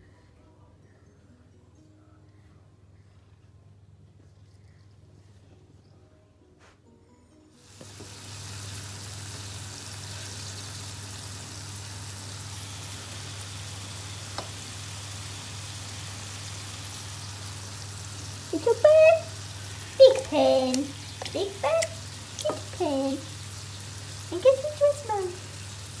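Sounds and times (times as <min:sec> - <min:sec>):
meat sizzling in a frying pan: 0:07.6 - 0:26.0.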